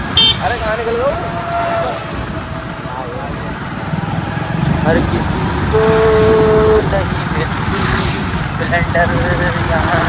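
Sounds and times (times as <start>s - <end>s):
road traffic noise: 0.0s - 10.0s
vehicle horn: 0.1s - 0.6s, 5.7s - 6.8s.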